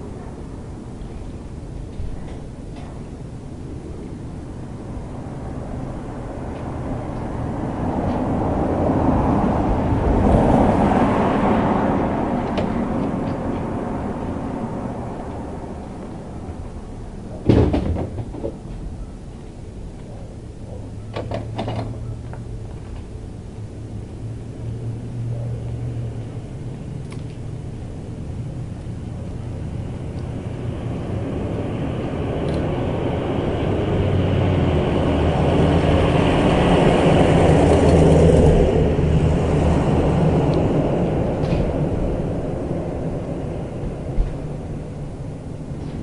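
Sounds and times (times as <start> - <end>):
car engine humming: 0.0 - 17.5, 18.2 - 46.0
door clattering open: 17.4 - 18.6.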